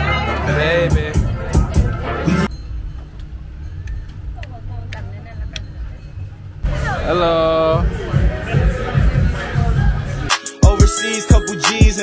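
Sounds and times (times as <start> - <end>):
road traffic rumble: 0.0 - 10.6
faint voices: 3.8 - 10.6.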